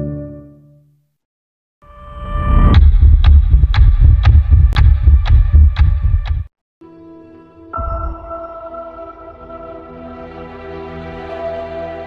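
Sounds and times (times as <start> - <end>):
throbbing bass pulse: 2.6 - 6.5.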